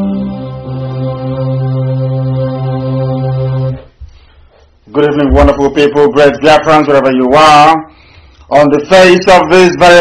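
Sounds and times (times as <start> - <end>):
music of sustained tones: 0.0 - 3.9.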